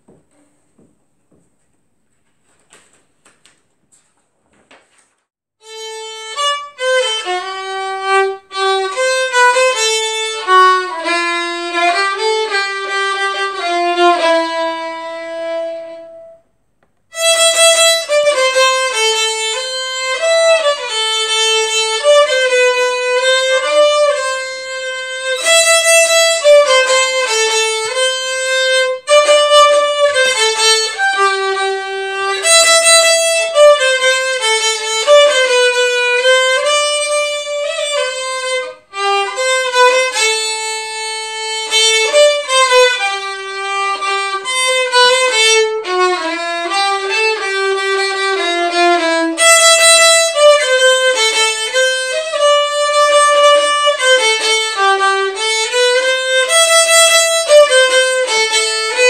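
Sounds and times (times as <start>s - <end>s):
solo violin playing: 5.6s - 16.4s, 17.1s - 59.0s.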